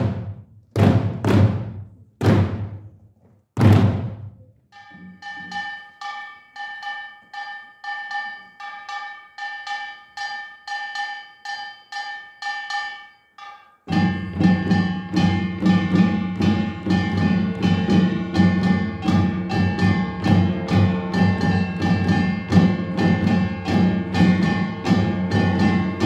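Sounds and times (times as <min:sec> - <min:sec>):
percussion ensemble playing: 0:00.0 - 0:02.9, 0:03.6 - 0:12.8, 0:13.4 - 0:26.0.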